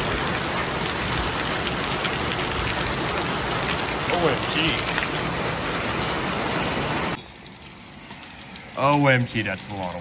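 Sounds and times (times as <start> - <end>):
heavy rain pouring: 0.0 - 10.0.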